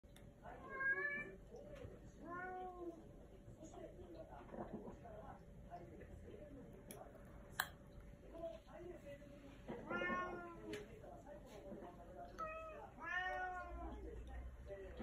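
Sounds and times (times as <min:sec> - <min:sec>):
cat meowing: 0:12.4 - 0:13.7.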